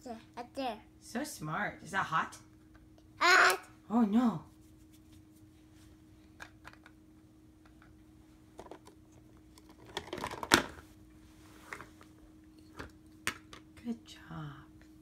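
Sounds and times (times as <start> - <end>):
plastic toys clicking and knocking: 9.6 - 10.8.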